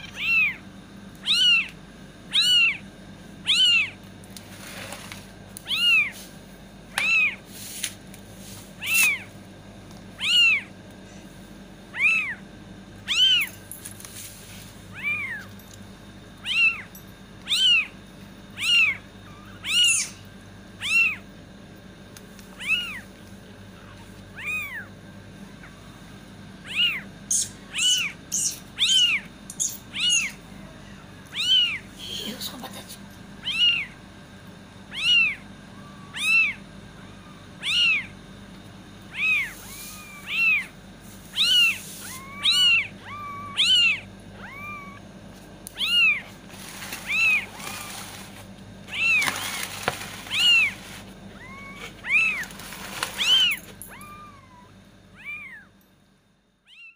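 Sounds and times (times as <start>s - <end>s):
kitten mewing: 0.0s - 0.6s, 1.2s - 2.8s, 3.4s - 4.0s, 5.6s - 6.2s, 6.9s - 7.4s, 8.8s - 9.3s, 10.2s - 10.7s, 11.9s - 12.4s, 13.0s - 13.5s, 14.9s - 15.5s, 16.4s - 16.9s, 17.5s - 18.0s, 18.6s - 21.3s, 22.5s - 23.1s, 23.8s - 24.9s, 26.6s - 32.4s, 33.4s - 34.0s, 34.9s - 36.6s, 37.6s - 38.2s, 39.1s - 45.0s, 45.7s - 48.2s, 50.3s - 55.7s.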